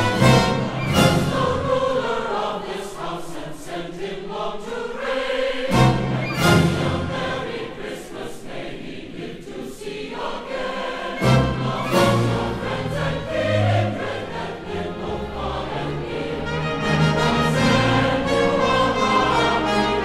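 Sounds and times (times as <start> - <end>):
choir singing a carol: 0.0 - 20.0.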